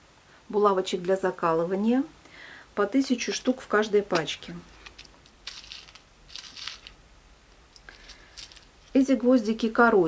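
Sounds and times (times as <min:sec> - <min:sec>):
plastic package crinkling: 0:04.1 - 0:07.0, 0:07.8 - 0:09.0.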